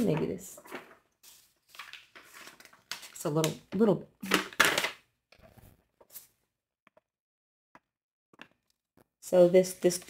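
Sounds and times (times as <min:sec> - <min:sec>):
paper rustling and crinkling: 0:00.0 - 0:03.4.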